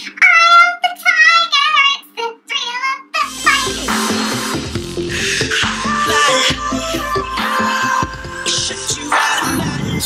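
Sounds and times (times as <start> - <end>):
woman singing wordlessly: 0.1 - 3.9.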